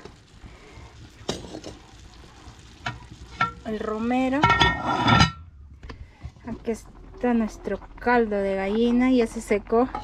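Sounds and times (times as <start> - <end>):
metal pot lids clinking: 2.8 - 5.5
woman's voice: 3.6 - 4.6, 6.4 - 10.0.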